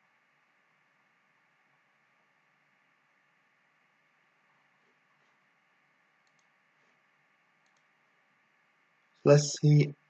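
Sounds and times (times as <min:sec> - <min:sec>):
faint computer mouse clicks: 0:06.2 - 0:06.6, 0:07.6 - 0:07.9.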